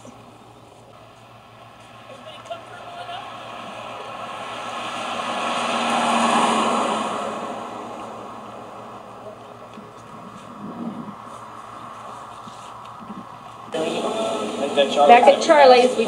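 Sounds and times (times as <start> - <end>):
car driving past: 1.0 - 16.0.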